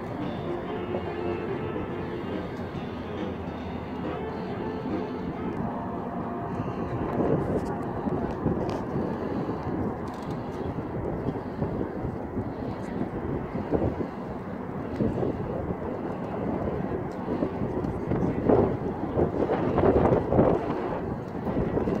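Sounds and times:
wind blowing across microphone: 0.0s - 22.0s.

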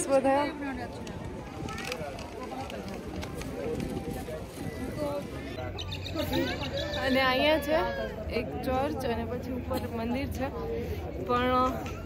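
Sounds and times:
voices of passers-by: 0.0s - 12.0s.

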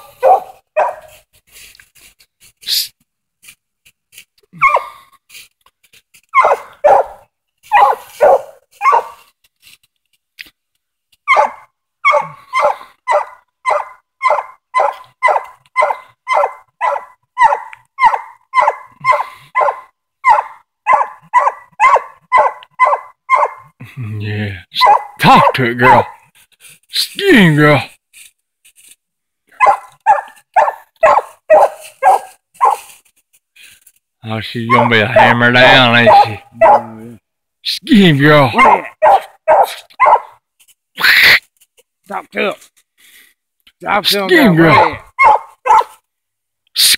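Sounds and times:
dog barking: 0.0s - 1.2s, 4.6s - 4.9s, 6.4s - 9.2s, 11.3s - 23.7s, 24.8s - 26.2s, 29.6s - 32.9s, 34.7s - 37.1s, 38.5s - 40.4s, 44.6s - 46.0s.

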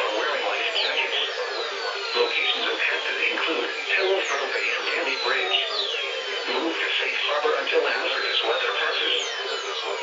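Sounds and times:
automated radio voice: 0.0s - 10.0s.

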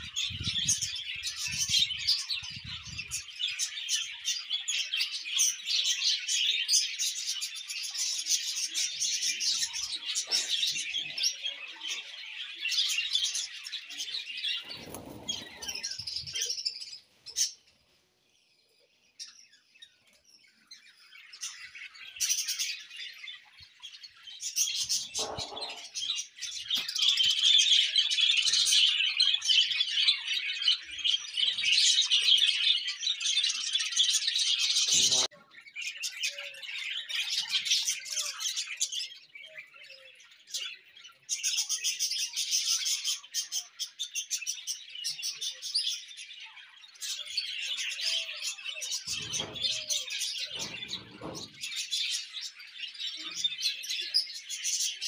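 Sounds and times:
small birds chirping: 0.0s - 55.0s.

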